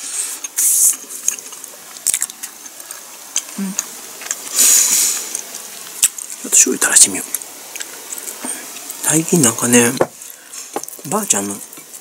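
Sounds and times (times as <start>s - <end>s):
person chewing toast: 0.2s - 4.5s, 5.2s - 6.4s, 7.3s - 9.0s
short hissing burst: 4.5s - 5.3s.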